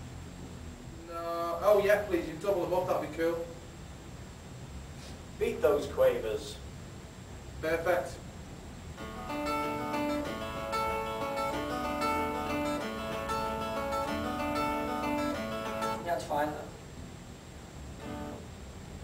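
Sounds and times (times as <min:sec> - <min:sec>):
guitar picked notes: 0:09.0 - 0:16.4, 0:18.0 - 0:18.5.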